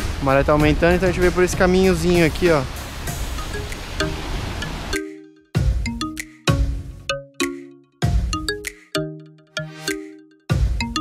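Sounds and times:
sea: 0:00.0 - 0:05.2
wind: 0:00.0 - 0:09.2
soft background music: 0:00.0 - 0:11.0.

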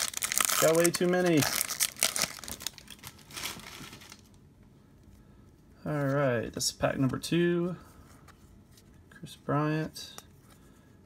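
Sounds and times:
wrapper crinkling: 0:00.0 - 0:04.4.

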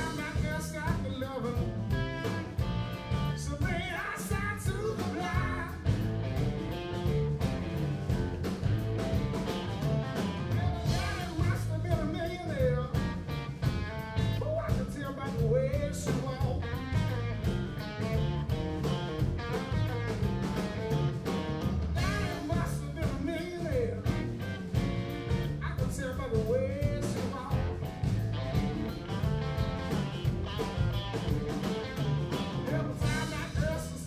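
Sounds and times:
bass guitar: 0:00.0 - 0:34.0
drum beat: 0:00.0 - 0:34.0
electric guitar: 0:00.0 - 0:34.0.

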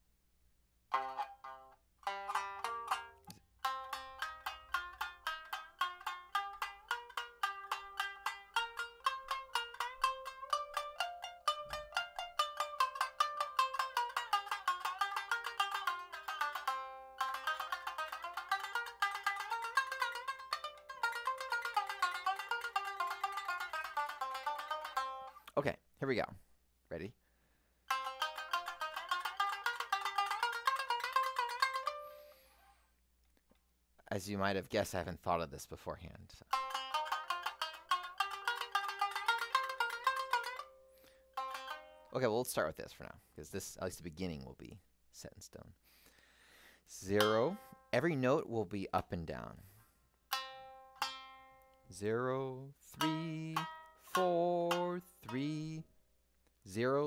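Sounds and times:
shamisen rapid plucked notes: 0:00.9 - 0:25.5, 0:27.9 - 0:32.5, 0:36.5 - 0:42.6, 0:47.0 - 0:48.5, 0:49.2 - 0:55.9.

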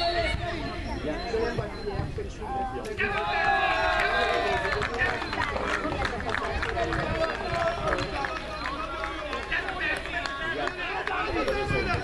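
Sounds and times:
crowd calling out and chattering: 0:00.0 - 0:12.0.

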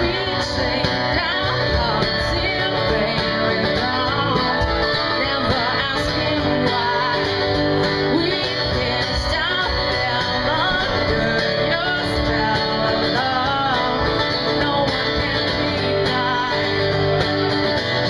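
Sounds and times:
guitar playing: 0:00.0 - 0:18.0
woman singing: 0:00.0 - 0:18.0.

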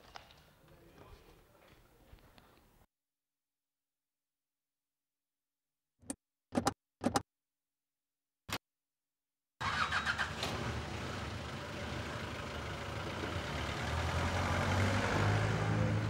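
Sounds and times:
car engine cranking and running: 0:09.6 - 0:13.9.

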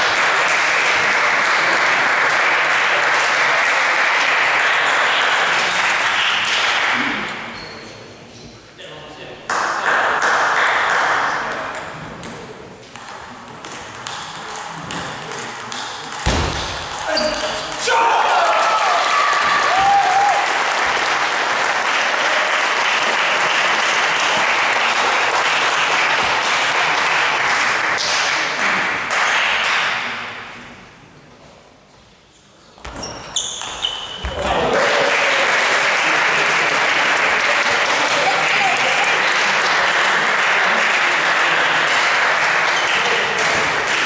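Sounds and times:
table tennis balls clicking: 0:11.5 - 0:17.8.

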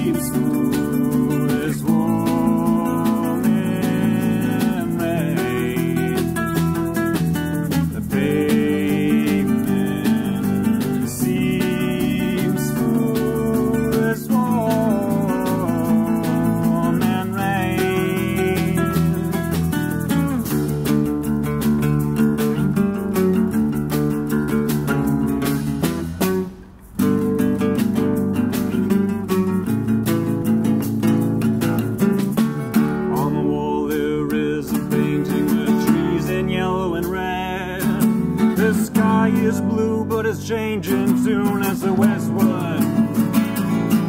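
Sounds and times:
acoustic band playing: 0:00.0 - 0:44.0.

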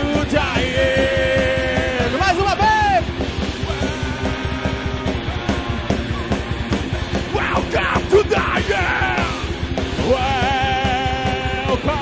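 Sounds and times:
distorted electric guitar: 0:00.0 - 0:12.0
fast drumming: 0:00.0 - 0:12.0
person yelling vocals: 0:07.3 - 0:09.4.

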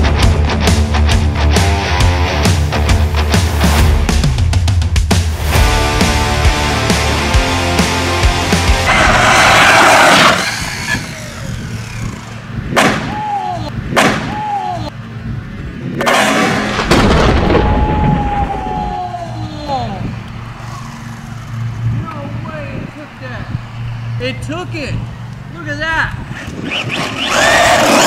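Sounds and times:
rc truck motor rushing: 0:08.8 - 0:12.6, 0:20.5 - 0:21.9, 0:26.4 - 0:28.0
motor whine falling in pitch: 0:10.1 - 0:12.5.

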